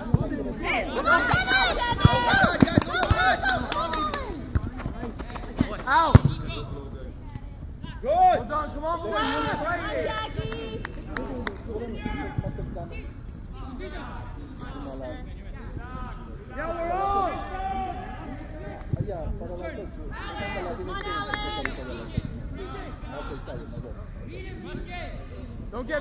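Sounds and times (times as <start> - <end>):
players shouting: 0.4 - 6.7, 8.0 - 12.4, 16.0 - 18.6, 20.0 - 23.5
soccer ball kick thuds: 1.2 - 3.4, 4.3 - 6.7.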